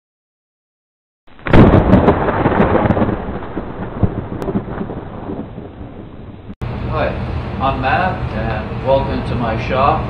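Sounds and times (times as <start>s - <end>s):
thunderclap with rolling rumble: 1.3s - 6.6s.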